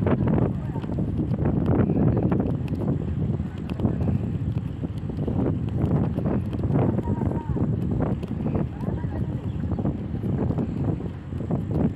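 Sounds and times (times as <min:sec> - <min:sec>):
wind buffeting microphone: 0:00.0 - 0:11.9.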